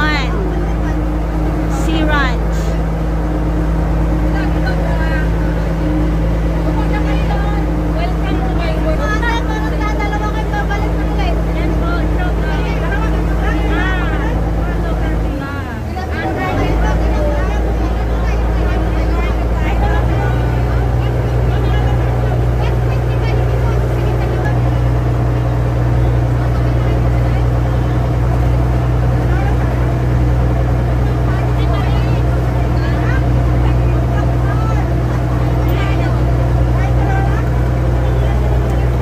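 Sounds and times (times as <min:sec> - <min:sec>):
boat engine humming: 0:00.0 - 0:39.0.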